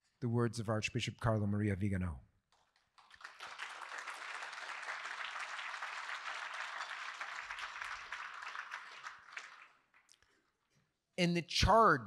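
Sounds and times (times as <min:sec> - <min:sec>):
audience applauding: 0:02.9 - 0:10.1.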